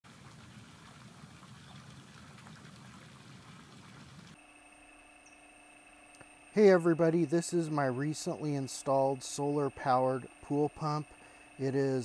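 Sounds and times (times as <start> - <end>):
pool water churning and splashing: 0.1 - 4.4
pool pump humming: 0.1 - 12.0
thin steady tones: 3.7 - 12.0.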